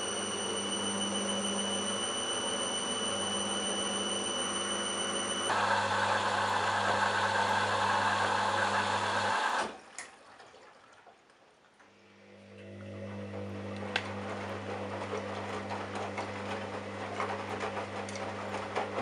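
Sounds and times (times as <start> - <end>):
washing machine motor hum: 0.0 - 9.8, 12.0 - 19.0
washing machine rinse noise: 0.0 - 19.0.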